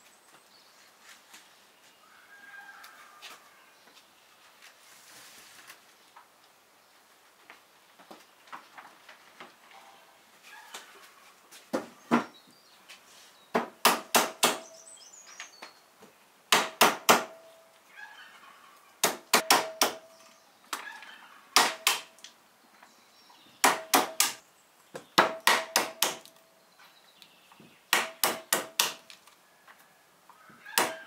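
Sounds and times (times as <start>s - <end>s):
hammer cracking nut shells: 21.6s - 22.2s, 23.6s - 24.4s, 25.2s - 26.4s, 28.0s - 29.2s.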